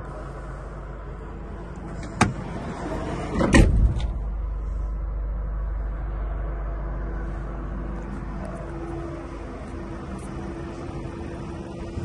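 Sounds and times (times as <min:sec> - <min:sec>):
low cabin hum: 0:00.0 - 0:12.0
van door thump: 0:01.9 - 0:02.5, 0:03.3 - 0:04.2.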